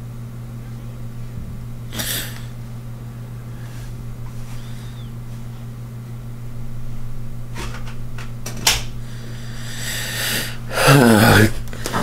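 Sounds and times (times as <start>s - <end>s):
fan humming: 0.0s - 12.0s
person breathing in: 3.5s - 5.1s, 9.0s - 12.0s
person groaning: 9.7s - 11.6s.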